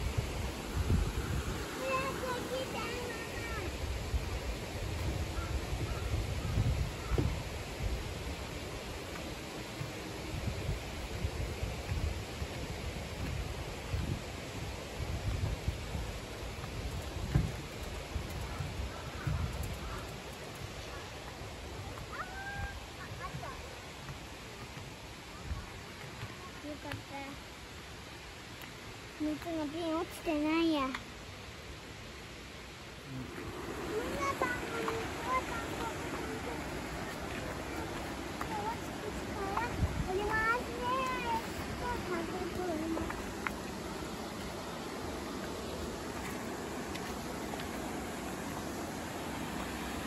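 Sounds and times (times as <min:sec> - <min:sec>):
steady background hiss: 0:00.0 - 0:50.0
child calling: 0:22.1 - 0:23.7, 0:33.9 - 0:36.7, 0:37.6 - 0:43.1.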